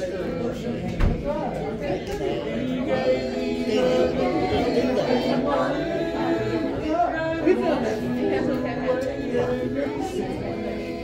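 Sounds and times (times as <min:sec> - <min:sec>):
group singing gospel song: 0:00.0 - 0:11.0.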